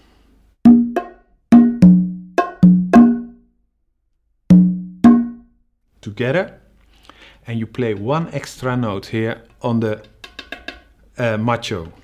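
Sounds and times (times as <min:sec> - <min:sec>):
congas and bongo struck by hand: 0:00.6 - 0:03.4, 0:04.5 - 0:05.5, 0:10.2 - 0:10.9.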